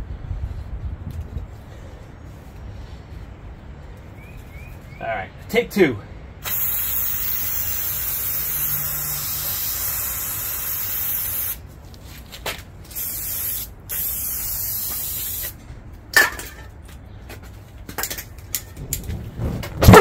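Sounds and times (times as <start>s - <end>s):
aerosol can spraying: 6.4s - 11.6s, 12.9s - 15.6s.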